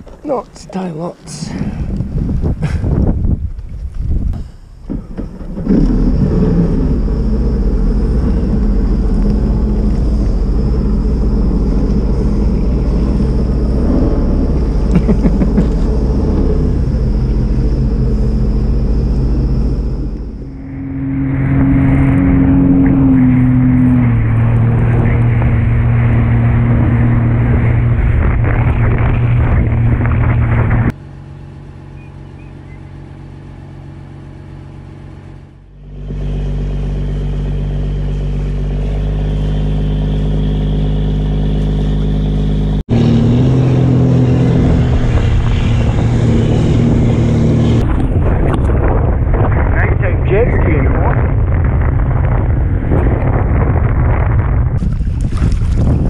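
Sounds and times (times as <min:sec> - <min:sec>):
wind: 0:00.0 - 0:56.0
boat engine drone: 0:02.9 - 0:56.0
rushing water: 0:54.8 - 0:56.0.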